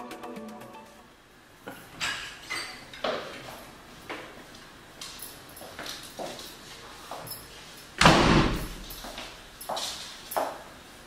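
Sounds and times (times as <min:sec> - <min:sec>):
door slamming shut: 0:08.0 - 0:09.0.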